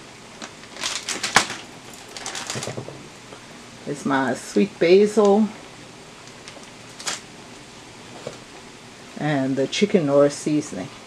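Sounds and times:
plastic bags crinkling: 0:00.4 - 0:03.9, 0:06.2 - 0:07.3.

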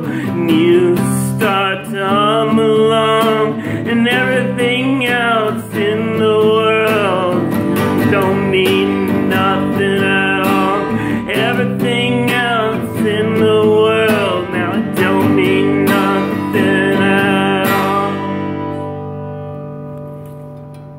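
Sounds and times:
acoustic guitar strumming: 0:00.0 - 0:20.9.

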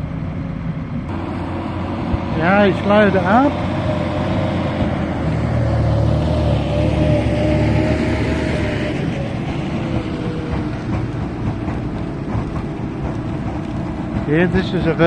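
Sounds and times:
distant harvester running: 0:00.0 - 0:15.0
tractor diesel engine whining: 0:00.0 - 0:15.0.

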